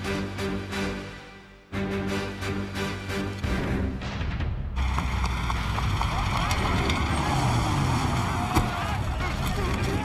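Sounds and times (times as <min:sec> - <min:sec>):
car engines running: 0:04.8 - 0:10.0
crowd shouting: 0:06.0 - 0:10.0.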